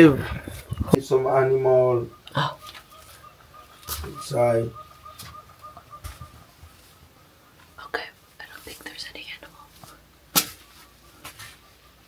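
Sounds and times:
person whispering: 7.8s - 10.0s.

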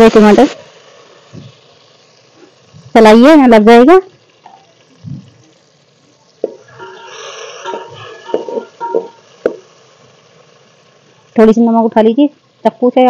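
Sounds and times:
metal ladle stirring in pot: 6.7s - 9.3s.

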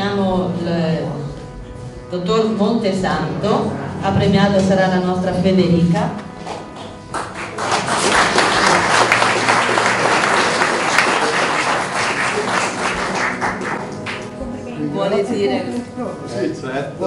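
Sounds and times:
audience applauding: 6.4s - 14.5s.

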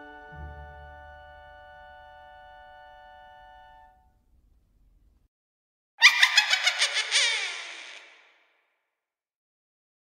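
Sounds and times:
high-pitched laughter: 6.0s - 8.3s.

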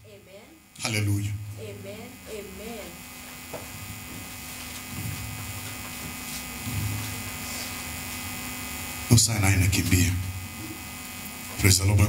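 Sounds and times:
low electrical mains hum: 0.0s - 12.0s.

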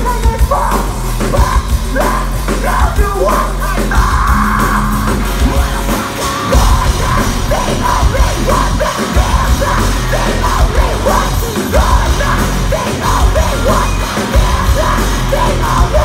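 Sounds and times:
live rock band playing: 0.0s - 16.0s
yelled vocals: 0.0s - 16.0s.

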